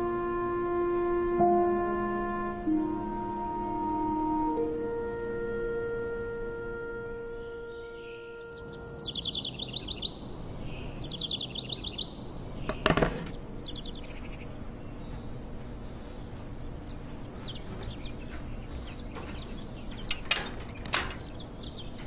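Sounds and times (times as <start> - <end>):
soft sustained music: 0.0 - 12.2
small birds twittering: 7.4 - 22.0
background hiss: 8.0 - 17.4.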